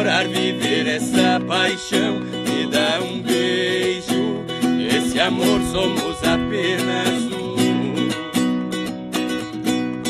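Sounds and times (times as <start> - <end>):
acoustic guitar strumming: 0.0 - 10.0
viola strumming chords: 0.0 - 10.0.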